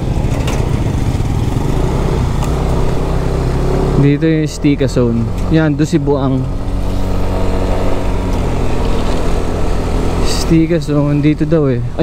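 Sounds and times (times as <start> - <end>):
road noise: 0.0 - 12.0
scooter engine running: 0.0 - 12.0
wind: 0.0 - 12.0.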